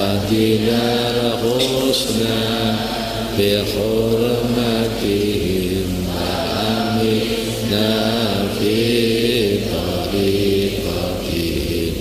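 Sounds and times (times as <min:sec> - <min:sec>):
voices chanting a devotional prayer: 0:00.0 - 0:12.0.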